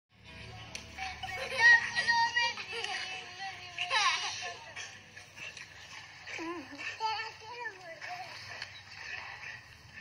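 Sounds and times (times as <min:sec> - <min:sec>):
music with a voice: 0:00.2 - 0:08.3.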